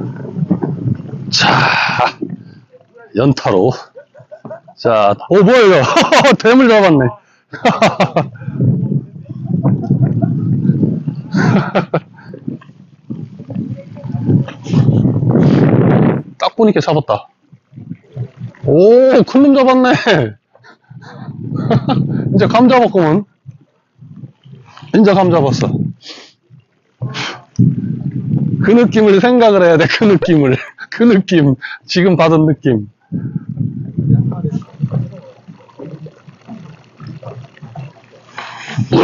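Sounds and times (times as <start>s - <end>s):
water lapping against boat hull: 0.0s - 6.3s, 7.8s - 30.9s, 32.9s - 39.0s
man laughing breathily: 9.2s - 12.6s, 20.6s - 22.3s.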